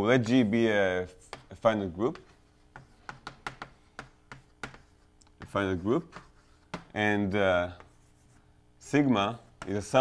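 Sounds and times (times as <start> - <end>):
chalk tapping and scraping on blackboard: 0.2 - 7.0, 7.6 - 8.5, 9.4 - 10.0.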